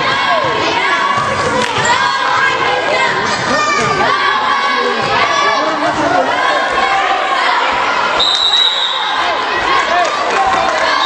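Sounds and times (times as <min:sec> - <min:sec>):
crowd voices: 0:00.0 - 0:11.0
referee's whistle blast: 0:08.2 - 0:09.3.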